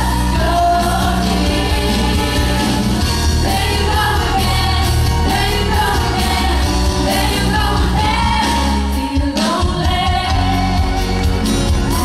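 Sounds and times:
woman singing into a microphone: 0.0 - 11.3
band playing with heavy bass: 0.0 - 12.0.

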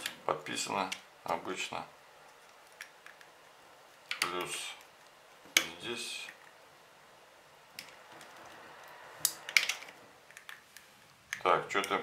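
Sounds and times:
metal clips clicking and rattling: 9.2 - 10.6.

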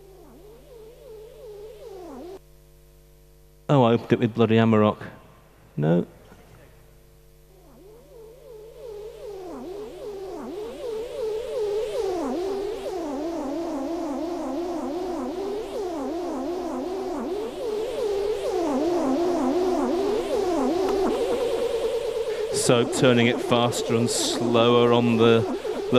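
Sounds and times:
wobbling analog synthesizer tones: 0.0 - 2.4, 7.4 - 25.9.

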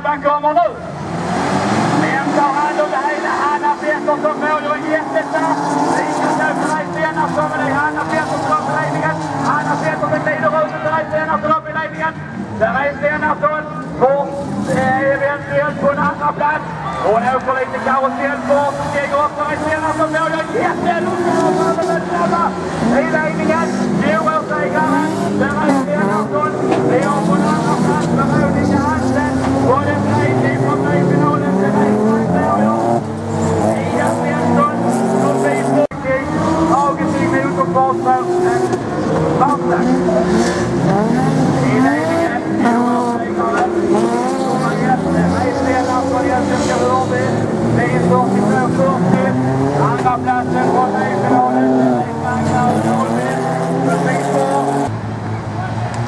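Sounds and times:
racing car engines revving: 0.0 - 56.0.

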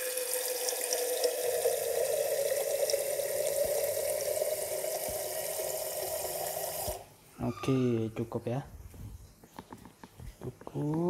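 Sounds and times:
tap water pouring into metal boiler: 0.0 - 7.0.

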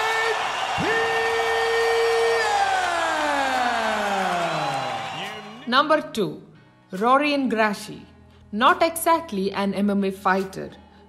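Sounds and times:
arena crowd noise: 0.0 - 5.7.

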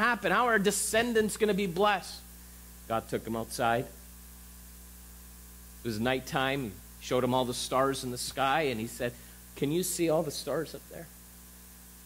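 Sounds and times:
man speaking: 0.0 - 2.3, 2.9 - 4.0, 5.8 - 11.2
low electrical mains hum: 0.0 - 12.0.

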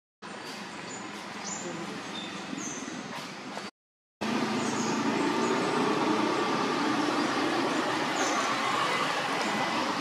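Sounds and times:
motor vehicle running: 3.0 - 10.0.

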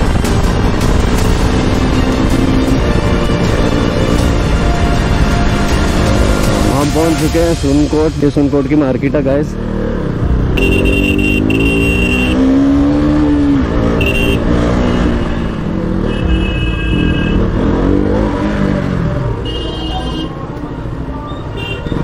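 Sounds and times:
motorcycle engine running: 0.0 - 6.9, 9.5 - 18.3.

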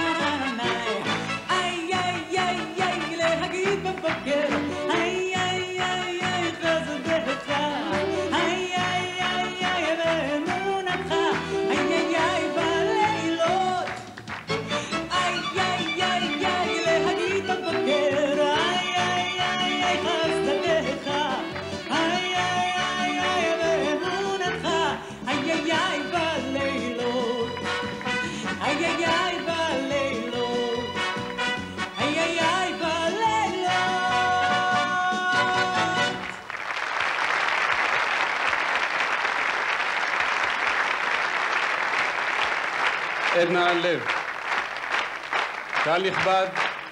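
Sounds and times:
woman singing into microphone: 0.0 - 14.0, 15.1 - 27.6, 28.5 - 30.9, 32.0 - 36.1
large crowd clapping: 0.0 - 29.4, 35.1 - 46.9
band accompaniment: 0.0 - 36.5.

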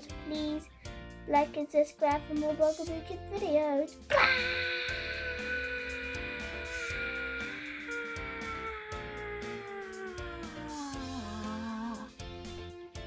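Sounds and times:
boy wailing: 4.1 - 12.2.

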